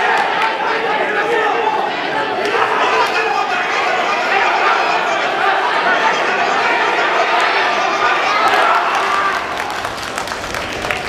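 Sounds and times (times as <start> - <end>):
spectators clapping: 0.0 - 0.7, 2.4 - 4.5, 7.0 - 11.0
crowd voices: 0.0 - 11.0.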